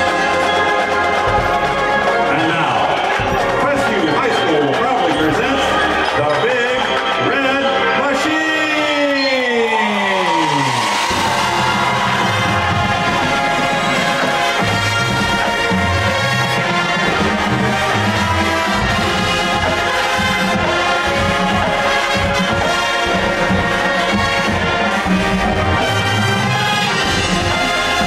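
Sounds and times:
marching band playing: 0.0s - 28.0s
brass falling glissando: 8.9s - 28.0s.

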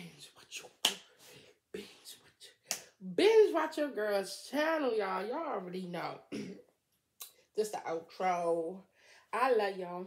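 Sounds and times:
finger snaps: 0.8s - 1.1s, 2.6s - 3.0s.

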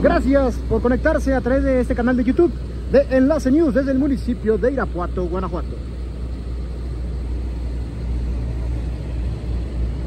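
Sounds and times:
highway traffic: 0.0s - 10.0s
tow truck engine running: 0.0s - 10.0s.

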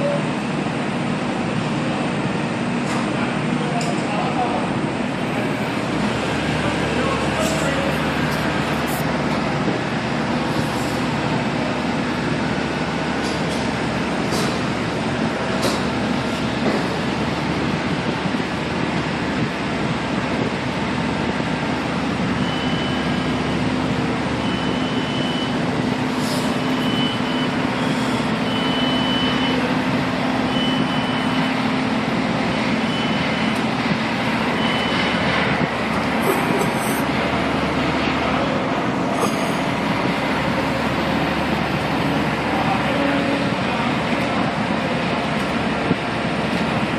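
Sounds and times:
diesel engines running: 0.0s - 46.9s
short high beeps: 26.5s - 29.6s.

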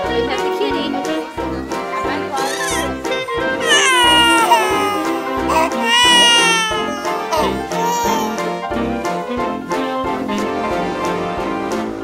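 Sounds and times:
background music: 0.0s - 12.0s
baby crying: 2.4s - 3.0s, 3.6s - 8.6s.

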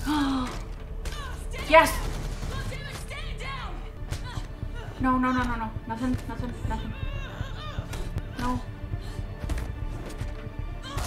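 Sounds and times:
tense action music: 0.0s - 11.0s.

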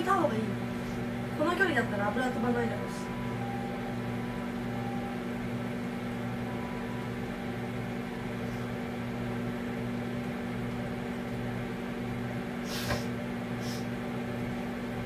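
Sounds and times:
kitchen appliance humming: 0.0s - 15.0s.

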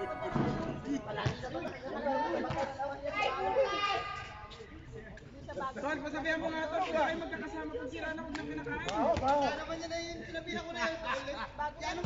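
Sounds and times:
people calling out and talking: 0.0s - 12.0s.

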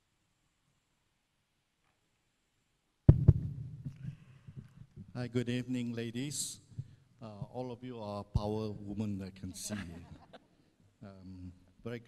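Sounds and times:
microphone handling thumps: 3.1s - 5.2s.

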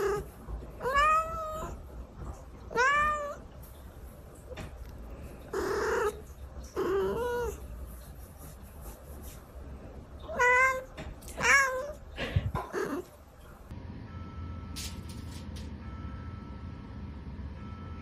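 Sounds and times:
cat meowing: 0.0s - 1.8s, 2.6s - 3.5s, 5.5s - 7.6s, 10.2s - 12.0s.

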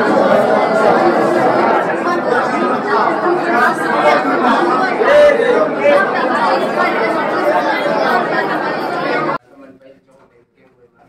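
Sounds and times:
congregation praying aloud: 0.0s - 9.4s.

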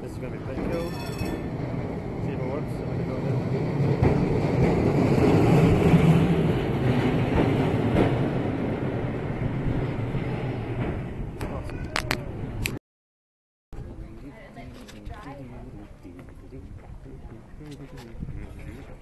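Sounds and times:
tram passing on rails: 0.0s - 12.7s.

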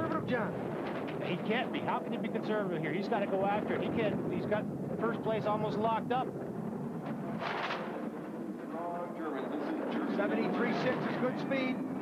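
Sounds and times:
voices: 0.0s - 6.5s, 7.1s - 12.0s
bobsled runners rumbling on ice: 0.0s - 12.0s.

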